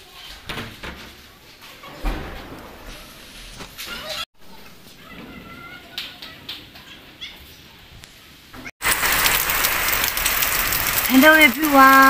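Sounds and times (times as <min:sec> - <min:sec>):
outdoor ambience: 0:00.0 - 0:12.0
heavy rain hissing: 0:08.8 - 0:12.0.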